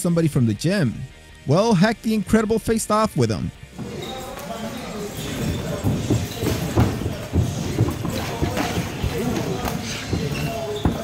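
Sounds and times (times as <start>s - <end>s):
background voices: 3.8s - 11.0s
bare feet stepping on mat: 3.8s - 11.0s
gloved punches thumping: 5.4s - 11.0s.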